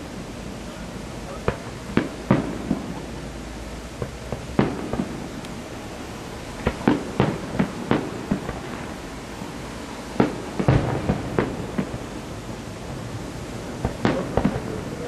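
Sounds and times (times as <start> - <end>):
firework shells bursting: 1.0 - 15.0.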